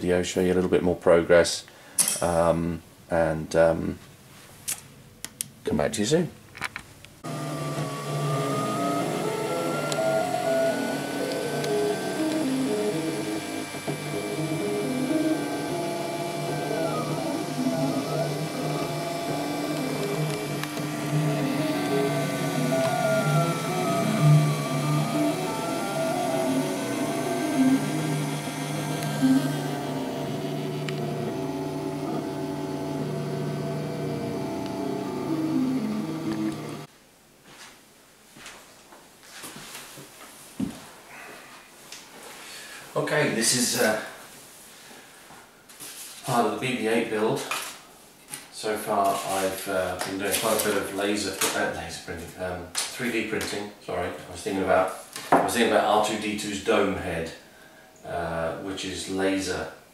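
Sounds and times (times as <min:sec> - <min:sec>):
fan hum: 0:07.2 - 0:36.9
stepper motors whining: 0:07.2 - 0:36.9.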